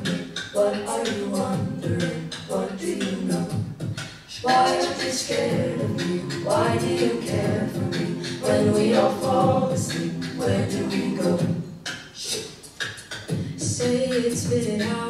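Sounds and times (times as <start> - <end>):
a cappella group singing: 0.0 - 15.0
vocal percussion clicking: 0.0 - 15.0.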